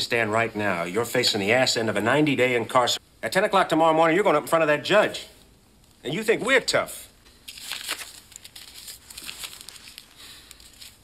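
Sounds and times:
rustling and crinkling: 0:07.3 - 0:11.0.

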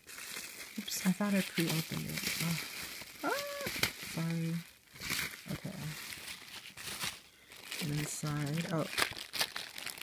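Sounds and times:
plastic bag crinkling: 0:00.0 - 0:10.0.

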